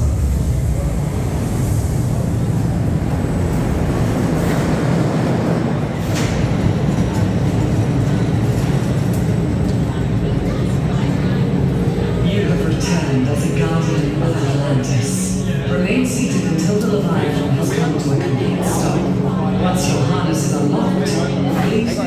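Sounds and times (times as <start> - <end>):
roller coaster train rumbling: 0.0 - 22.0.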